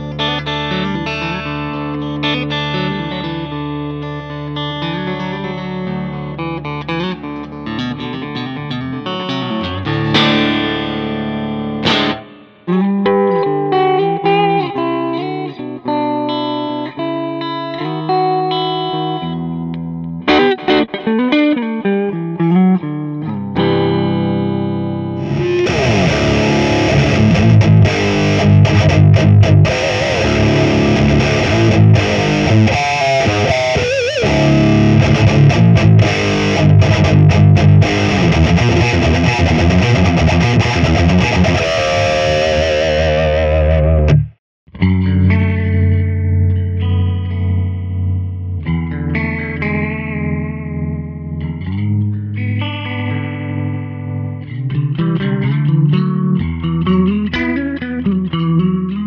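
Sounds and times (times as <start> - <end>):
distorted electric guitar riff: 0.0 - 59.0
electric guitar picked notes: 0.0 - 59.0.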